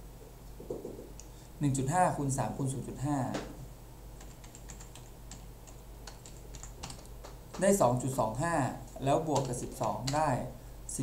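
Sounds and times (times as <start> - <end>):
person speaking: 0.6 - 3.7, 7.5 - 11.0
computer keyboard typing: 4.2 - 7.7, 9.2 - 10.3.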